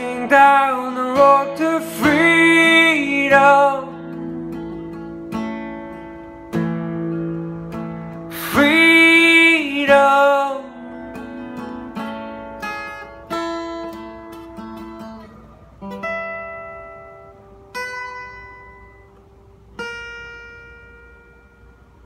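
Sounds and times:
person singing: 0:00.0 - 0:04.4, 0:08.3 - 0:11.2
acoustic guitar fingerpicked: 0:00.0 - 0:22.0.

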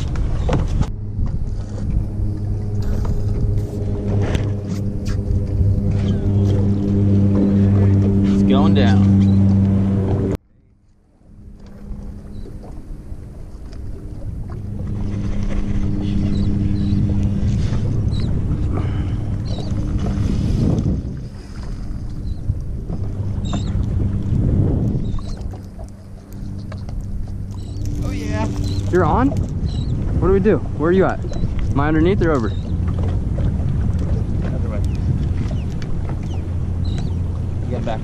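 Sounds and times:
boat motor humming: 0:00.0 - 0:38.0
water noise: 0:00.0 - 0:38.0
wind: 0:00.0 - 0:38.0.

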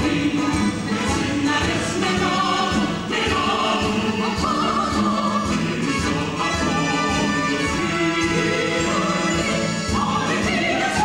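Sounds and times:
band accompaniment: 0:00.0 - 0:11.0
chorus singing: 0:00.0 - 0:11.0
steady drum beat: 0:00.0 - 0:11.0.

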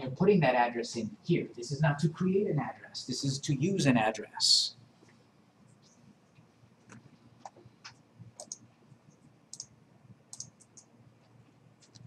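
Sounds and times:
computer mouse clicks: 0:05.8 - 0:09.7, 0:10.3 - 0:10.9, 0:11.8 - 0:12.0.

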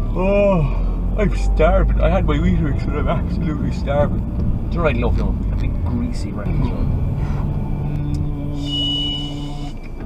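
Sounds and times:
car rumble: 0:00.0 - 0:10.0
man humming low note: 0:05.7 - 0:10.0.

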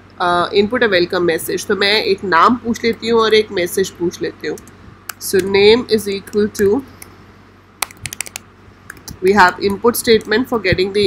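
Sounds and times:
computer keyboard key clicks: 0:07.8 - 0:10.3.

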